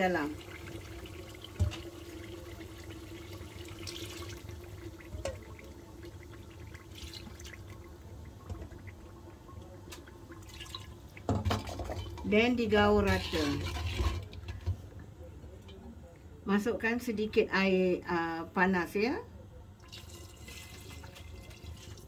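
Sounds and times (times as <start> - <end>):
liquid pouring and dripping: 0.4 - 12.3, 19.8 - 22.0.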